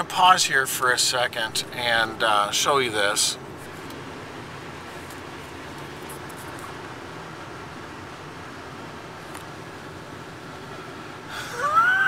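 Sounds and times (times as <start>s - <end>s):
car engine idling: 0.0s - 12.0s
man laughing: 11.4s - 12.0s.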